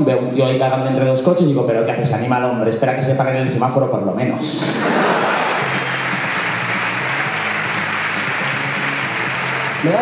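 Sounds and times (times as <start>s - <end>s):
audience applause: 4.8s - 10.0s
music playing: 4.8s - 10.0s.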